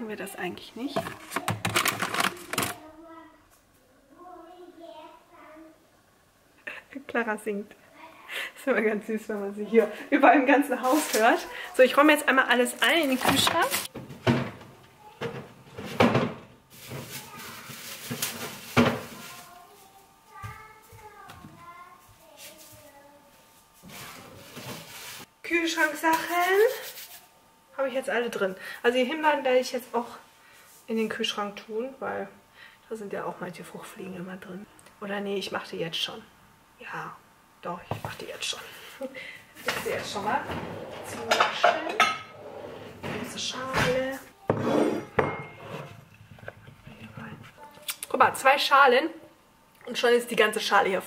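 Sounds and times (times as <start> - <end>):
groceries rustling and knocking: 0.8 - 2.8, 12.6 - 25.3
distant child singing or calling: 19.0 - 23.4.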